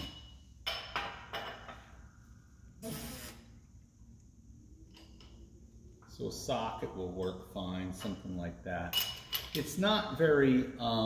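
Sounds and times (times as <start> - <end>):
low steady shop hum: 0.0 - 11.0
metal tools clattering: 8.9 - 9.7.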